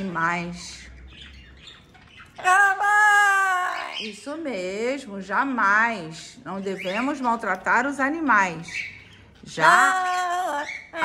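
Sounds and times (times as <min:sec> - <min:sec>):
parrot calling loudly: 0:01.3 - 0:04.2.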